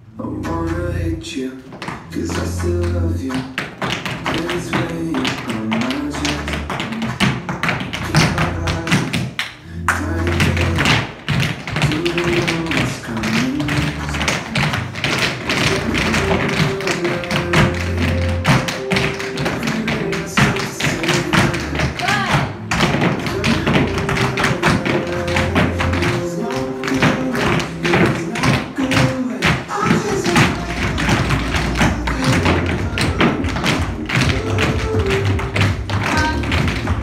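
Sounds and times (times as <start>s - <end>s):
recorded song with steady bass: 0.0s - 37.0s
tap shoes on hard floor: 3.3s - 37.0s.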